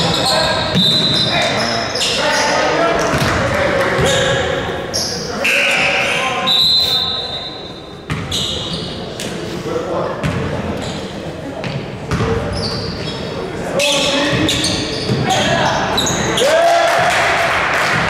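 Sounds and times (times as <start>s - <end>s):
sneakers squeaking: 0.0s - 16.5s
people talking: 0.0s - 17.3s.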